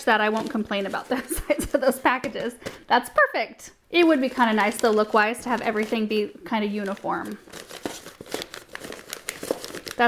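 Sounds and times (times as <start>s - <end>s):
paper packets rustling and crinkling: 0.0s - 2.8s, 4.0s - 10.0s.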